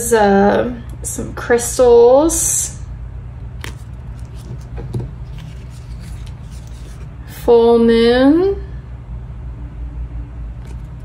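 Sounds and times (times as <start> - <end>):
steady low hum: 0.0 - 11.0
paper stickers rustling: 3.6 - 7.2.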